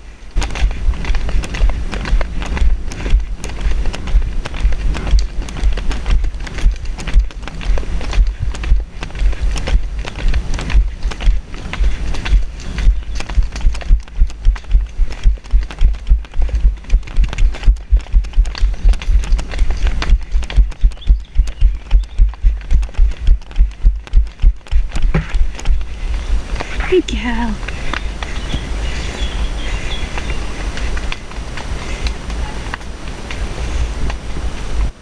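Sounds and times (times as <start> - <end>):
rhythmic low thumping: 0.0 - 28.8.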